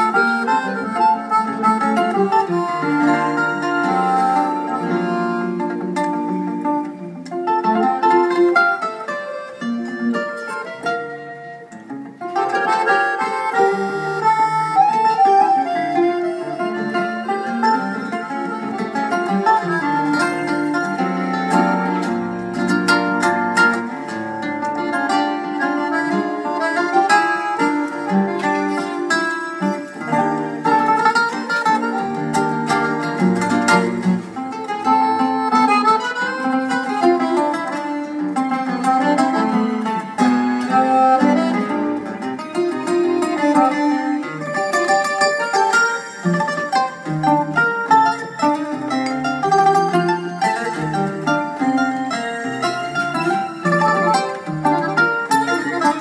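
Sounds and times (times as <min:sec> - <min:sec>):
acoustic guitar music: 0:00.0 - 0:56.0.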